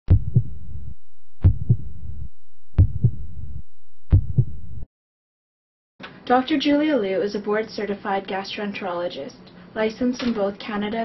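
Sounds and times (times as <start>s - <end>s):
heartbeat: 0.1s - 4.9s.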